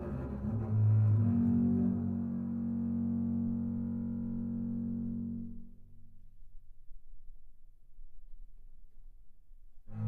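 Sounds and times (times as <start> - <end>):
double bass bowed notes: 0.0 - 6.2.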